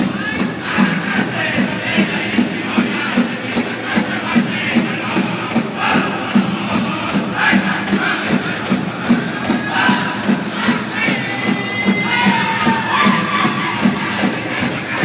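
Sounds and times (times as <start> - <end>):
big drum beating in unison: 0.0 - 15.0
crowd noise: 0.0 - 15.0
drum group singing: 0.0 - 15.0.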